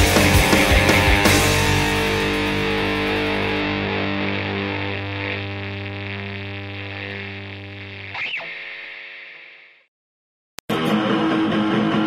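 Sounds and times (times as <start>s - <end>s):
bass guitar note: 0.0s - 8.1s
distorted electric guitar chord: 0.0s - 9.2s.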